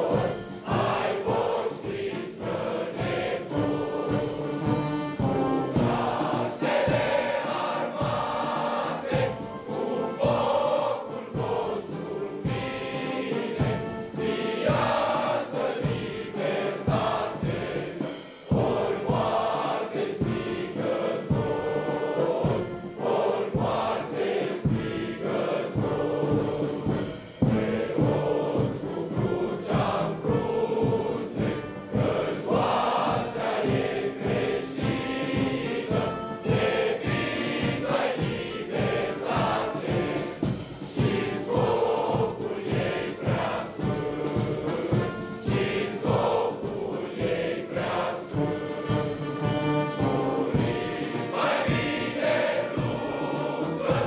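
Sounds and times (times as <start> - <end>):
brass band playing: 0.0 - 54.0
choir of voices singing: 0.0 - 54.0.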